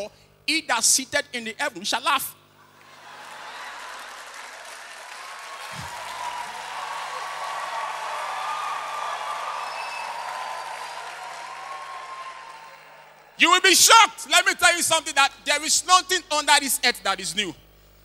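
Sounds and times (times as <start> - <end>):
audience applauding: 2.8 - 13.4.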